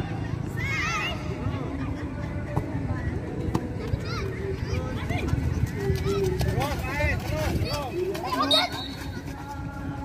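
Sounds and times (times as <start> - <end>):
children calling and shouting: 0.0 - 9.9
running feet and ball thuds: 2.2 - 10.0.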